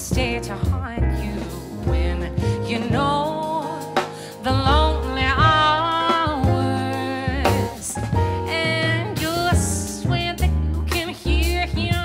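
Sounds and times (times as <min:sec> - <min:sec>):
grand piano: 0:00.0 - 0:12.0
woman singing jazz: 0:00.0 - 0:12.0.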